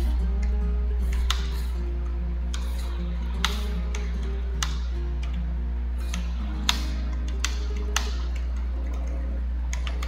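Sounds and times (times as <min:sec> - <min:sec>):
soft background music: 0:00.0 - 0:10.0
steady low hum: 0:00.0 - 0:10.0
computer keyboard keystrokes: 0:02.5 - 0:05.4, 0:06.0 - 0:10.0.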